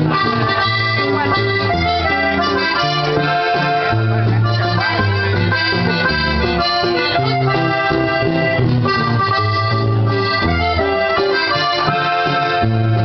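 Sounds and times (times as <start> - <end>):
button accordion melody: 0.0 - 13.0
guitar accompaniment: 0.0 - 13.0.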